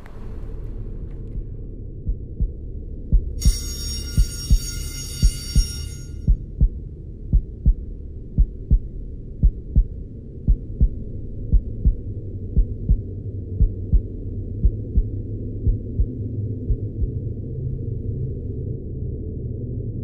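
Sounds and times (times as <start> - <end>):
heartbeat thumps: 0.0 - 17.2
low steady drone: 0.0 - 20.0
high ringing tone: 3.4 - 6.4.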